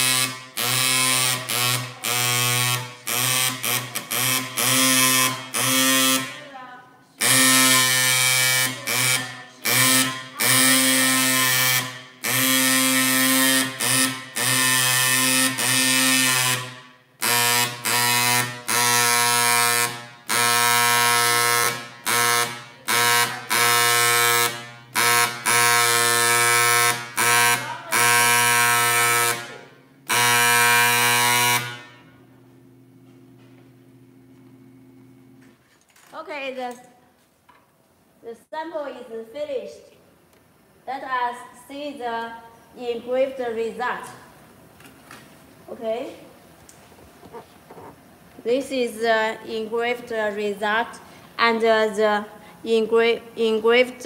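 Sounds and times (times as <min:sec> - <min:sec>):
dot peen marker stylus buzzing: 0:00.0 - 0:06.3, 0:07.2 - 0:32.0.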